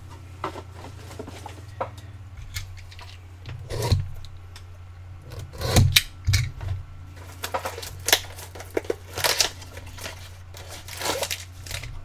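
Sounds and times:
steady low hum: 0.0 - 12.0
cardboard boxes scraping and knocking: 0.1 - 1.8.

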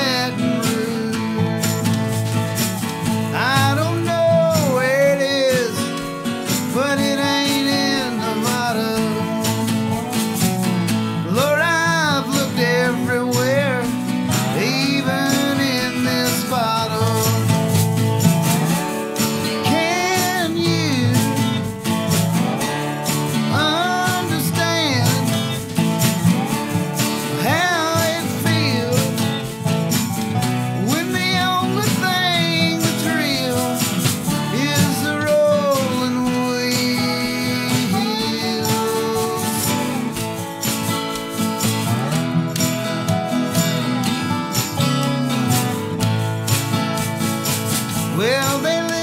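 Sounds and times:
man singing: 0.0 - 41.0, 41.7 - 46.2, 47.9 - 49.0
slide dobro: 0.0 - 49.0
strummed acoustic guitar: 0.0 - 49.0
snare drum played with brushes: 17.2 - 49.0.

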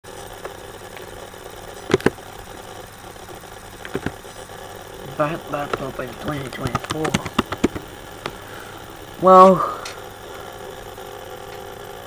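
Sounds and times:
laptop humming: 0.4 - 11.9.

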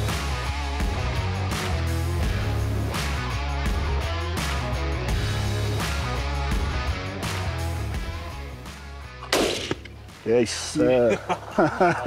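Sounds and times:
background music: 0.0 - 12.0
rifle shot with echo: 9.2 - 10.0.

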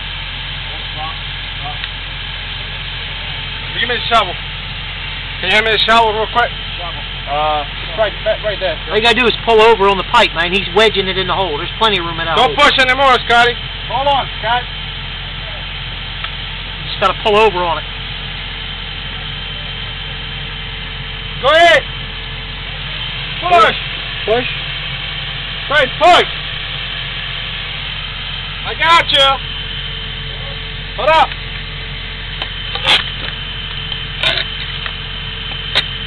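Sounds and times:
engine idling: 0.0 - 36.0.

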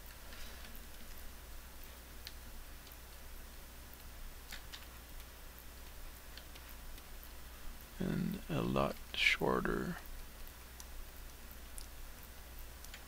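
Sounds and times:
low hum and hiss: 0.0 - 13.0
keyboard and mouse clicks: 4.5 - 7.1, 12.8 - 13.0.

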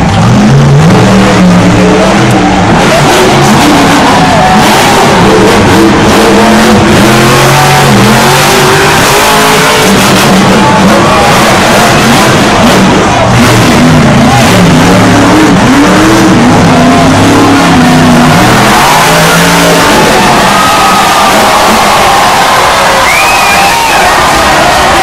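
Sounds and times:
crowd and stadium noise: 0.0 - 25.0
crowd whooping and yelling: 0.0 - 25.0
monster truck engine revving: 0.0 - 25.0.

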